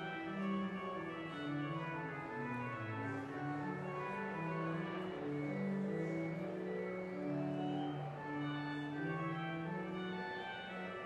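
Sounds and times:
pipe organ sustained notes: 0:00.0 - 0:11.0.

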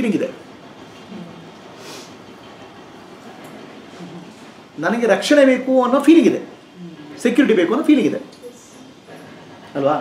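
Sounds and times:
room noise: 0:00.0 - 0:10.0
background hiss: 0:01.1 - 0:02.3.

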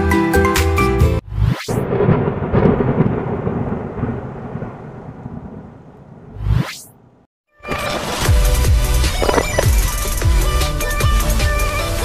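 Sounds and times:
thunder-like rumble: 0:01.7 - 0:07.3.

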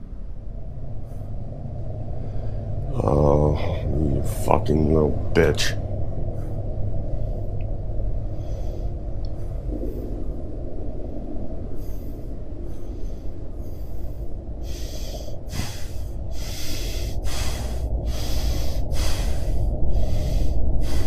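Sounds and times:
steady low rumble: 0:00.0 - 0:21.0
person breathing hard: 0:08.2 - 0:10.3, 0:11.7 - 0:21.0.

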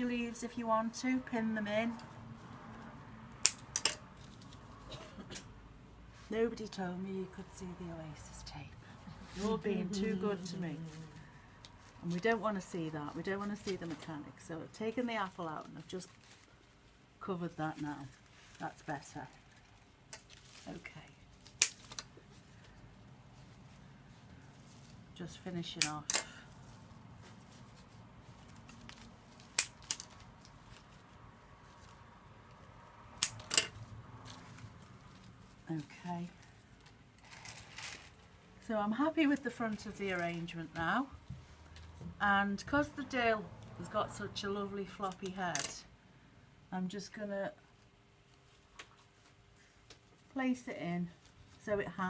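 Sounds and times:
scissors snipping plant stems: 0:03.4 - 0:04.0, 0:21.4 - 0:22.1, 0:29.4 - 0:30.2, 0:33.2 - 0:33.8.

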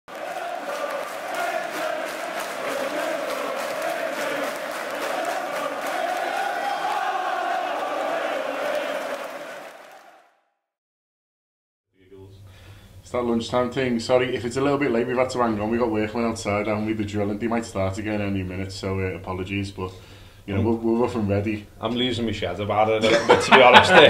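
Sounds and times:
crowd chanting: 0:00.1 - 0:10.3.

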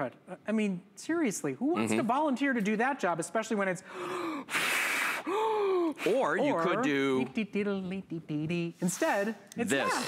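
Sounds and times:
man blowing into fist: 0:04.5 - 0:05.6.

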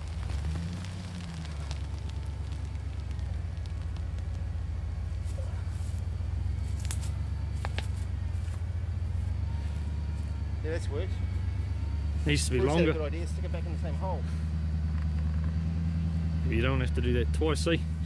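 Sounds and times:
vehicle engine rumbling: 0:00.0 - 0:18.0.

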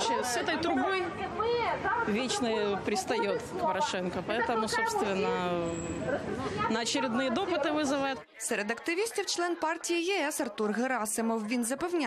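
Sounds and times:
crowd voices overlapping: 0:00.0 - 0:12.0
woman talking: 0:00.0 - 0:12.0.

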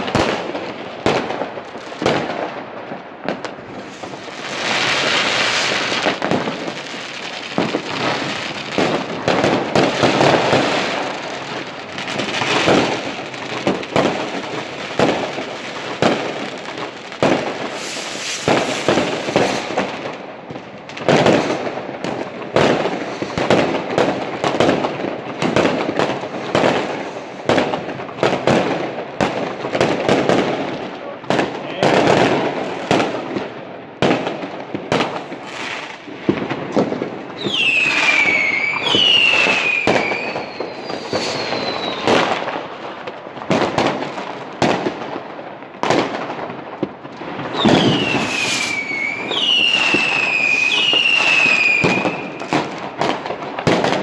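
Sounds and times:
fireworks banging: 0:00.0 - 0:54.0
fireworks crackling: 0:00.0 - 0:54.0.

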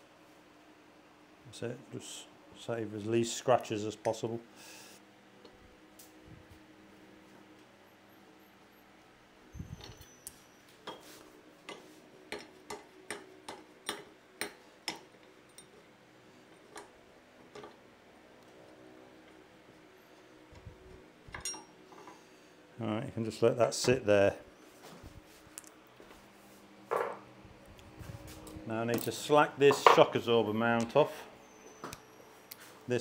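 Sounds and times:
fan humming: 0:09.0 - 0:33.0.

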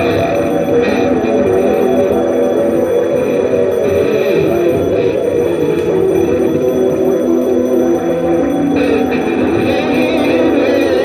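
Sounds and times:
dense electronic drone: 0:00.0 - 0:11.0.

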